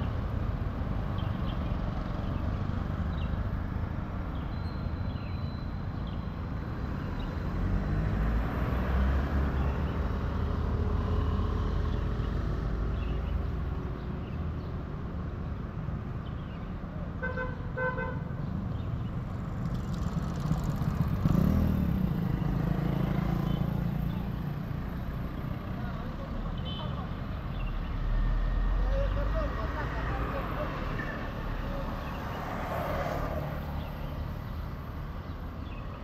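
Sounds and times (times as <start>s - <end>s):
road and wind noise: 0.0s - 36.0s.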